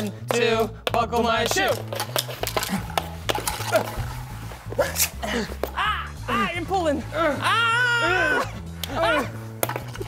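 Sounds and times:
background music with bass line: 0.0s - 10.0s
hockey sticks striking plastic puck: 0.2s - 4.1s, 9.6s - 10.0s.

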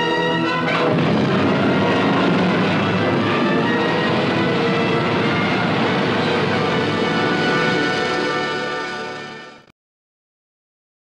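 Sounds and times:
rocket blast rushing rumble: 0.2s - 9.2s.

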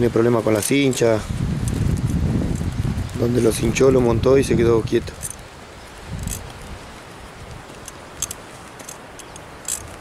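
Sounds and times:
wind rumble on microphone: 0.0s - 8.6s
faint metal tack clinks: 5.1s - 5.4s, 7.7s - 10.0s.

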